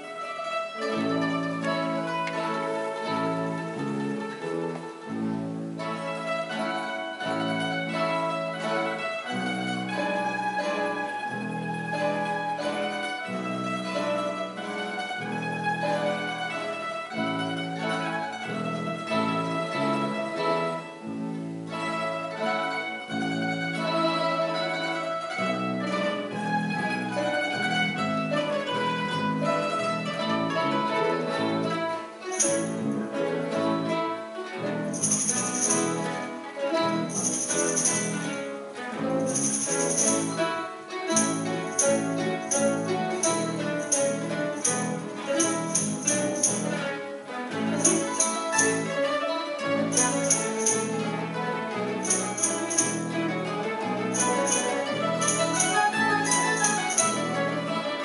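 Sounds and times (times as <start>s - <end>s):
plucked string orchestra: 0.0s - 58.0s.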